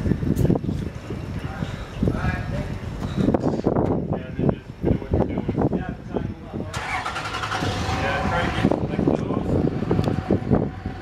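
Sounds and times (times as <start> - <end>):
engine running: 6.8 - 11.0.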